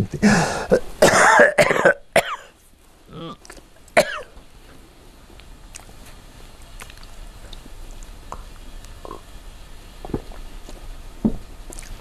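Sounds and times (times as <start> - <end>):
man coughing: 0.1 - 2.5, 4.0 - 4.3.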